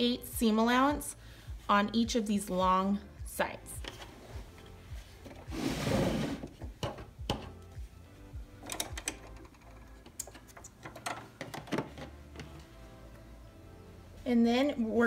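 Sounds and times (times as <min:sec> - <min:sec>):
light background music: 0:00.0 - 0:15.0.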